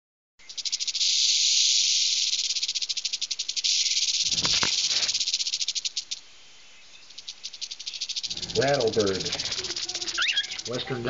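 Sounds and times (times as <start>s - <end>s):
cockatiel rattling hiss: 0.4s - 6.3s, 7.0s - 10.9s.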